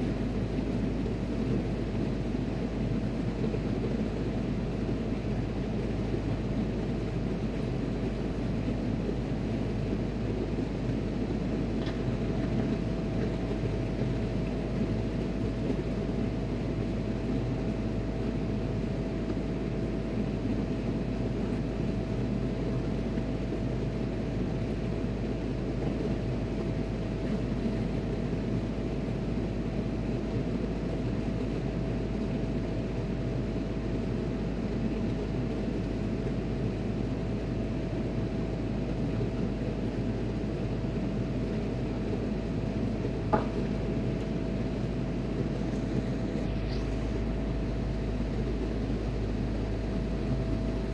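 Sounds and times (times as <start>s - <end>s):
ship machinery drone: 0.0s - 50.9s
thin steady whine: 0.0s - 50.9s.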